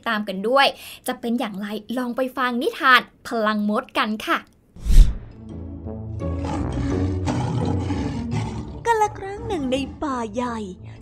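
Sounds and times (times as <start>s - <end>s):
lion roaring: 6.4s - 8.9s.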